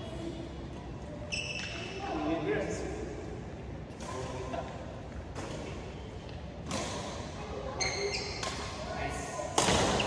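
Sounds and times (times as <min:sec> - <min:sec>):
shoe soles squeaking on court floor: 0:01.3 - 0:02.0, 0:07.7 - 0:08.6.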